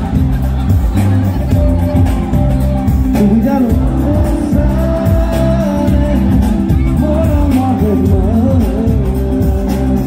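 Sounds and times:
live band through pa system: 0.0s - 10.0s
person singing: 1.8s - 10.0s.

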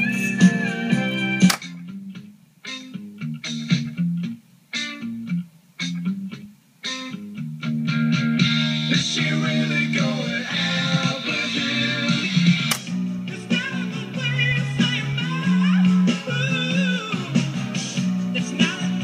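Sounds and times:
guitar rock music from tape: 0.0s - 19.0s
tape deck click: 1.4s - 1.8s, 12.5s - 13.0s.

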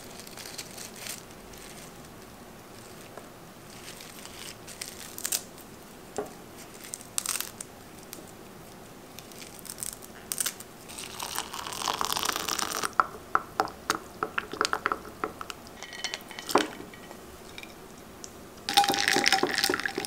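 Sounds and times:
plastic bag crinkling: 0.0s - 3.1s
hot water pouring into glass: 11.0s - 13.0s, 18.7s - 20.0s
spoon clinking against glass: 15.8s - 17.8s, 18.7s - 20.0s.

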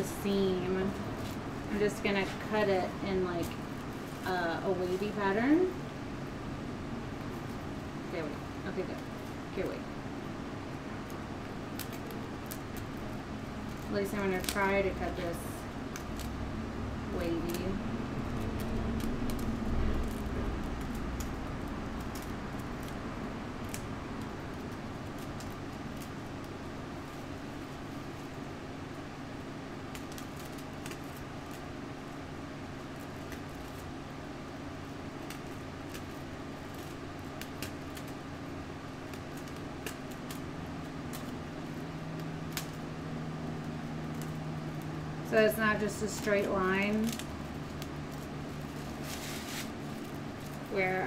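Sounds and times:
fan hum: 0.0s - 51.0s.

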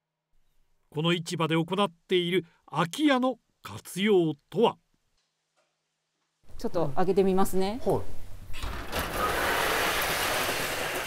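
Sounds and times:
metal roller shutter rattling: 8.6s - 11.0s.

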